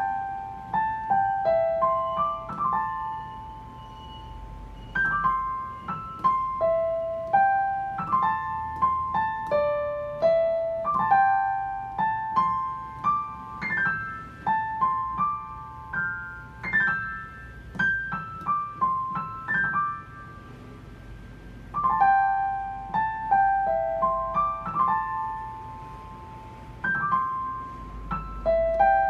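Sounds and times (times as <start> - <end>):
piano melody with grace-note runs: 0.0 - 29.0.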